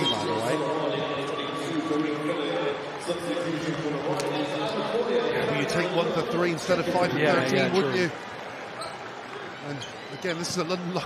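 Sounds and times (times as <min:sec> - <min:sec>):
indoor crowd murmur: 0:00.0 - 0:11.0.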